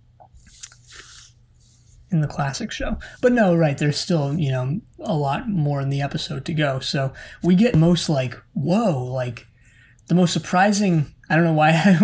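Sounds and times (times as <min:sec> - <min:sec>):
faint mouth sounds: 0:00.2 - 0:01.3
breath hiss: 0:00.6 - 0:01.9.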